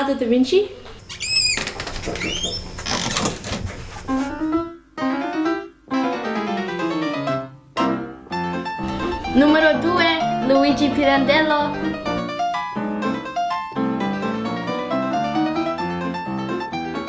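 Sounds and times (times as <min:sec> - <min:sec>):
background piano music: 0:04.1 - 0:17.0.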